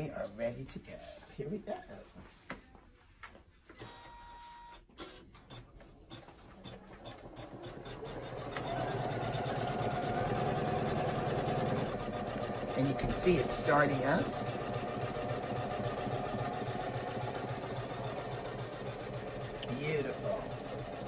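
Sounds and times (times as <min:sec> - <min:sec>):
embroidery machine stitching: 0:05.4 - 0:21.0.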